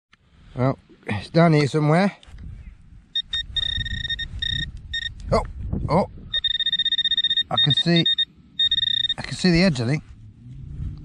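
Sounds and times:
metal detector pinpointer beeping: 3.2 - 5.3, 6.3 - 9.5.

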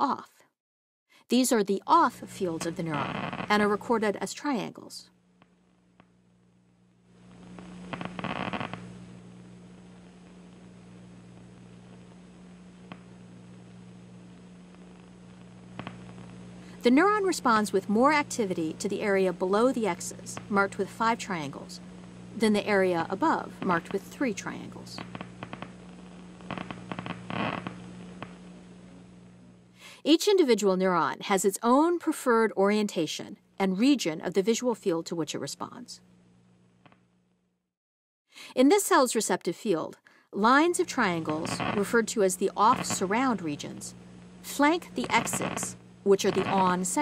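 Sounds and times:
steady electrical hum: 1.3 - 37.5, 38.6 - 47.0.

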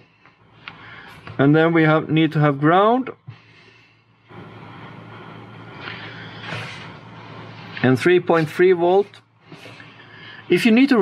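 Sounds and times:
mechanical hum with hiss: 0.0 - 11.0.

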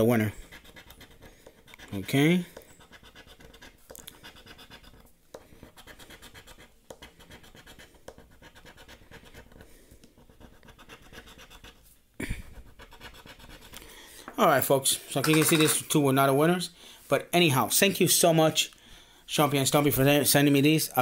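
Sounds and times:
plastic chip scraping scratch ticket: 0.0 - 11.8.

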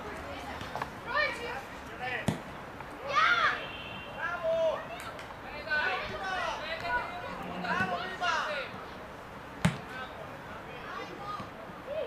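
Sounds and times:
players shouting: 3.0 - 8.8.

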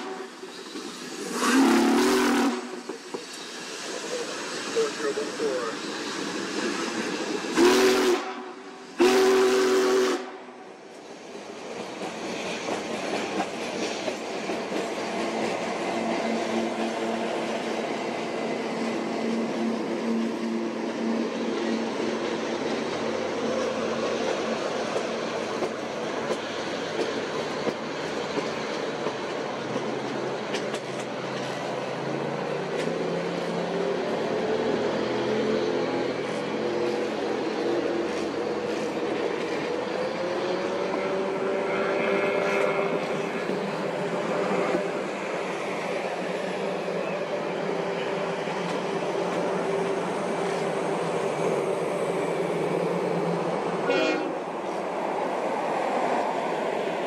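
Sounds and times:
train wheels rumbling on track: 0.0 - 57.0.

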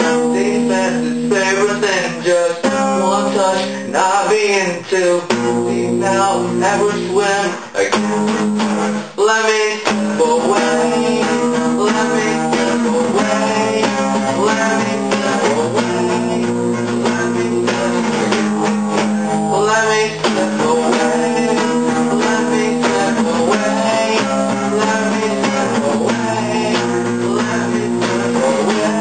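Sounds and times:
acoustic guitar strumming: 0.0 - 29.0.

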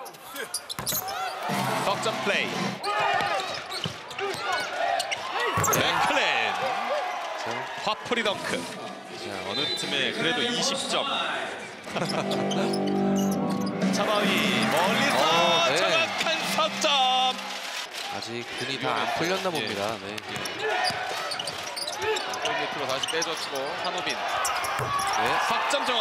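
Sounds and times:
basketball bouncing on wooden court: 5.6 - 5.9
man commentating: 13.8 - 17.5.

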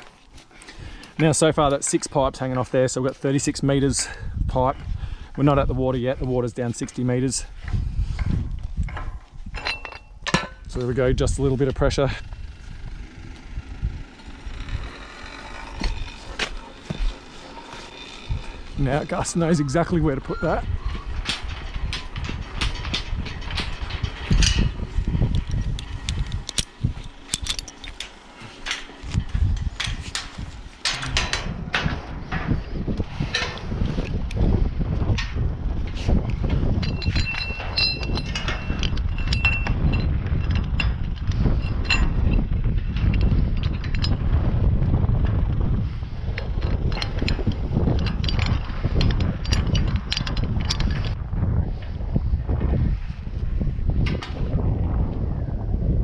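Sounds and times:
wind buffeting microphone: 0.0 - 56.0
hands and boots striking metal rungs: 8.8 - 10.8, 29.8 - 32.6.

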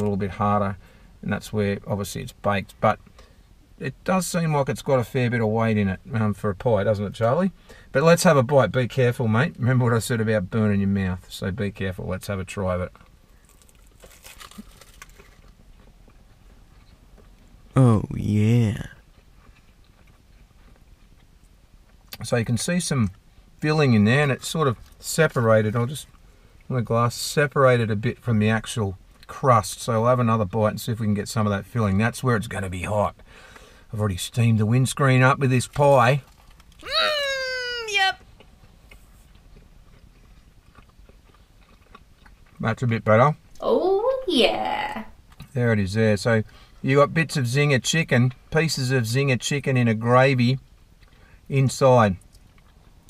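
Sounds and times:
chewing pastry: 12.7 - 23.2, 38.2 - 43.6, 50.6 - 53.0
pastry crust crunching: 13.0 - 17.4, 38.2 - 42.6.

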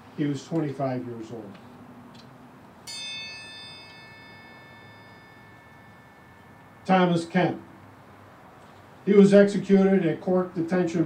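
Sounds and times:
small high-pitched bell ringing: 2.8 - 7.4.

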